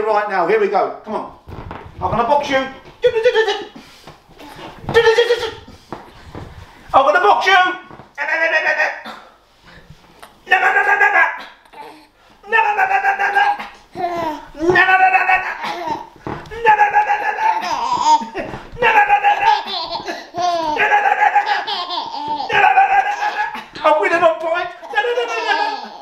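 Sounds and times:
baby laughing: 0:10.5 - 0:26.0.

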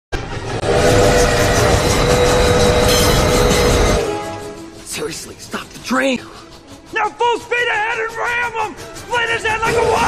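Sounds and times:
rumble of moving train: 0:00.1 - 0:10.0
train whistle blowing: 0:00.6 - 0:04.7.

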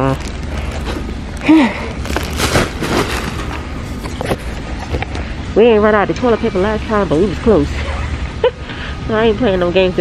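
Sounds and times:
plastic wrap crinkling: 0:02.0 - 0:03.8.

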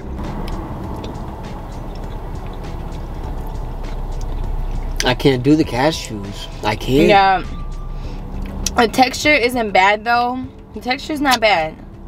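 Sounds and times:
car cabin rumble: 0:00.0 - 0:12.0.

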